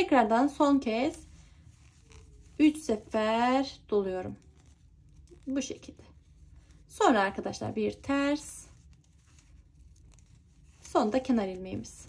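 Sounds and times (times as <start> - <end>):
yarn rustling over knitting needles: 0.0 - 12.0.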